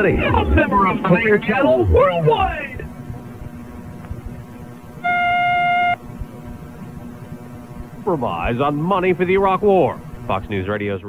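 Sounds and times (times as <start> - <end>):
faint hum and hiss: 0.0 - 11.0.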